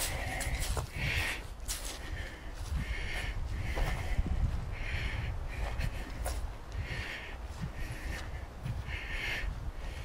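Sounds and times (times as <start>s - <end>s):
person breathing heavily: 0.0s - 10.0s.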